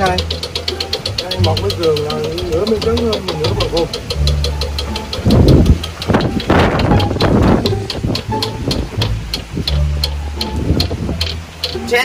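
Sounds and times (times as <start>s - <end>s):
background music with bass: 0.0s - 12.0s
spinning wheel ticking: 0.0s - 12.0s.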